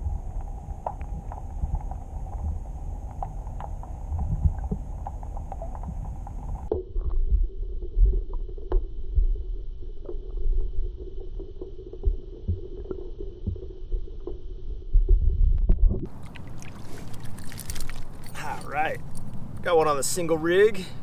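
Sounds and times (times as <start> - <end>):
muffled underwater rumble: 0.0 - 18.3
background hum: 0.0 - 21.0.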